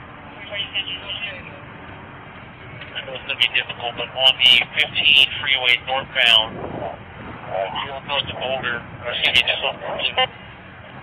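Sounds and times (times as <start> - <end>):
police radio voice chatter: 2.8 - 6.5, 7.5 - 10.4.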